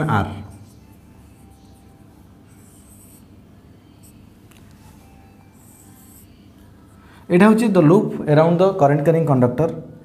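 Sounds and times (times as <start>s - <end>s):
marker stroke on whiteboard: 0.0s - 3.4s.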